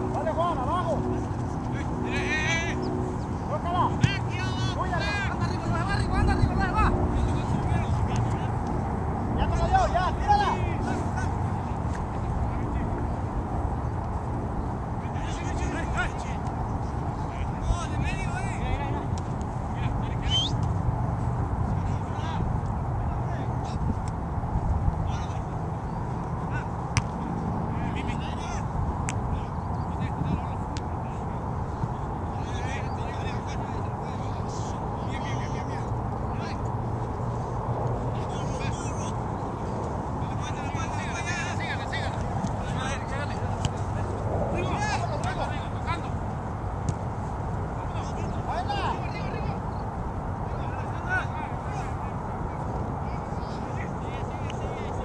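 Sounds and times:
wind rumble on microphone: 0.0 - 55.0
distant people shouting: 3.4 - 8.6
steady low rumble: 36.0 - 47.9.

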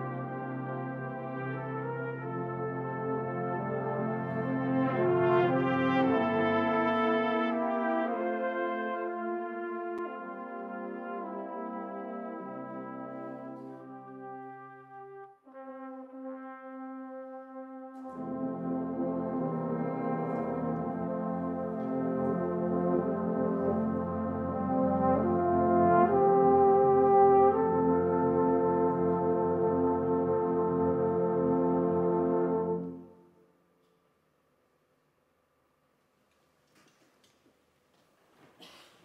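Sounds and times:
brass band playing slow chords: 0.0 - 33.5.

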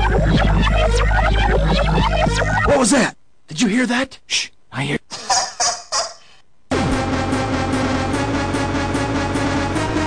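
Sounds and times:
loud music: 6.7 - 10.0.

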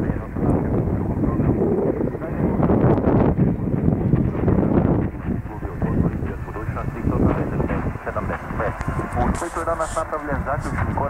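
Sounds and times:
radio static and hiss: 0.0 - 11.0
wind buffeting microphone: 0.0 - 11.0.

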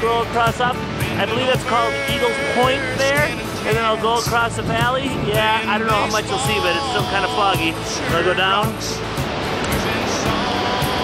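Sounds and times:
faint music: 0.0 - 11.0
rain: 0.0 - 11.0
wind on microphone: 0.7 - 7.1.

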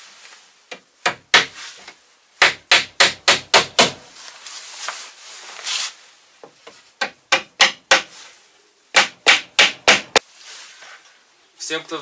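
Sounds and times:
hammer nailing wood: 0.7 - 1.6, 2.4 - 4.0, 7.0 - 8.1, 8.9 - 10.2.

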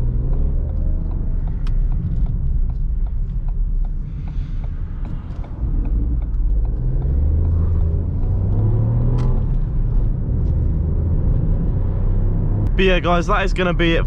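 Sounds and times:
car engine accelerating: 0.0 - 14.0
road rumble: 0.0 - 14.0
man's voice: 12.7 - 14.0.

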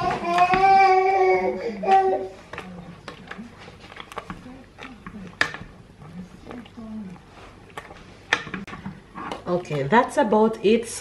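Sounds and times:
wet squelching: 0.0 - 9.9.

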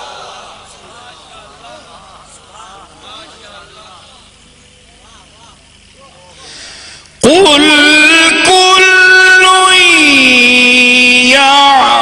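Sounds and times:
faint voices murmuring: 0.0 - 6.9
low electrical hum: 0.0 - 12.0.

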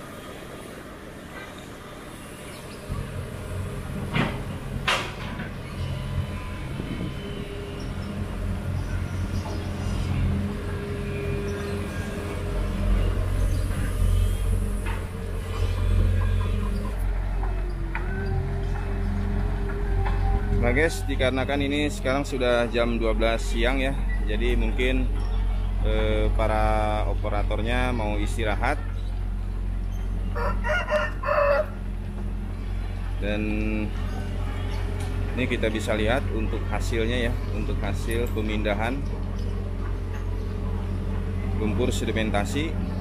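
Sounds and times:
diesel excavator engine running: 0.0 - 43.0
steady low hum: 0.0 - 43.0
rooster crowing: 30.2 - 32.0.

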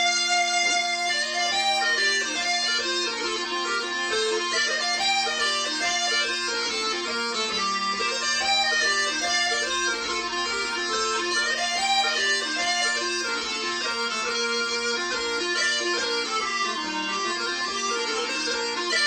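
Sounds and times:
bagpipe drone: 0.0 - 19.0
small bagpipes playing dance tune: 0.0 - 19.0.

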